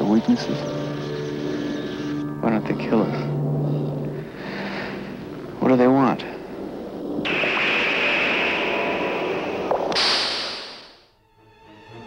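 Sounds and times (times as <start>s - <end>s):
loud rushing hiss: 7.2s - 11.1s.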